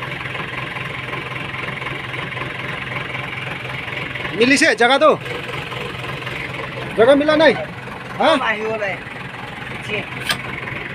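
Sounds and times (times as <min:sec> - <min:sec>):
diesel engine idling: 0:00.0 - 0:10.9.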